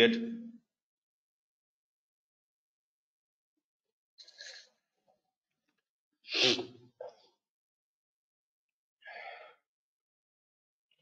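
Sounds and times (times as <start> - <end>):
person sneezing: 6.3 - 6.8
short breath: 9.0 - 9.6.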